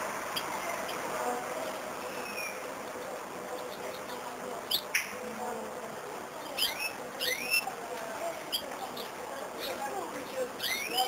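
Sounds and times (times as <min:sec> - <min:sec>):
bird chirping: 0:02.0 - 0:05.1, 0:06.4 - 0:07.8, 0:08.4 - 0:11.0.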